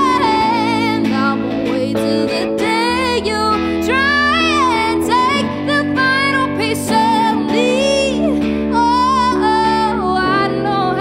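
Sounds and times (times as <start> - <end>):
electric guitar and band: 0.0 - 11.0
woman singing with vibrato: 0.0 - 11.0.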